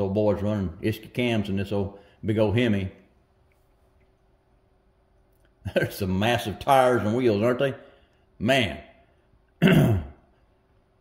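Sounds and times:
man clearing his throat: 0:09.6 - 0:10.4.

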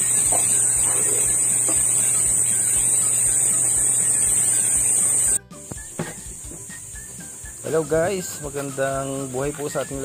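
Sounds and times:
high-pitched whine: 0:00.0 - 0:07.7.

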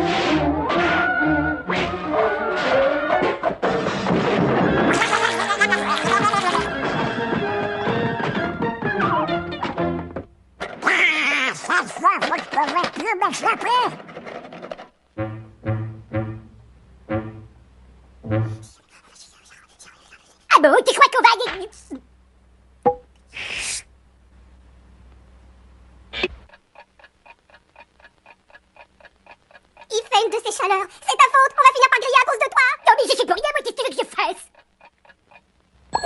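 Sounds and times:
cartoon character squawky cry: 0:10.8 - 0:11.9
cartoon music: 0:15.2 - 0:17.5, 0:18.2 - 0:18.7
cartoon character panting fast: 0:18.4 - 0:20.5.

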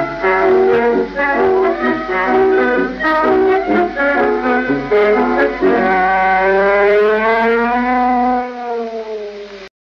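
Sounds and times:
long brass-like note: 0:00.0 - 0:09.5.

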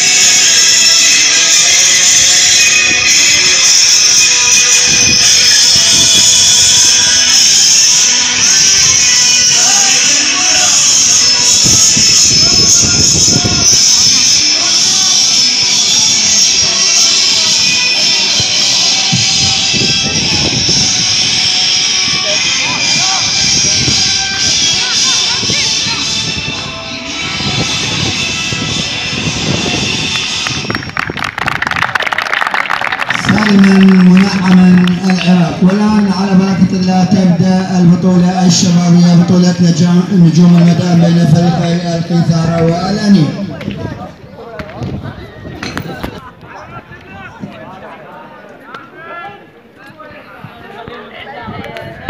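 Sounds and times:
voices talking over one another: 0:00.0 - 0:30.7
music playing: 0:00.0 - 0:43.6
hand clapping: 0:30.1 - 0:36.1
man's loud held voice: 0:33.1 - 0:43.7.

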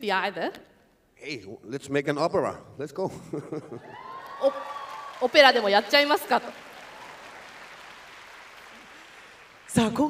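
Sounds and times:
audience applauding: 0:03.8 - 0:10.0.

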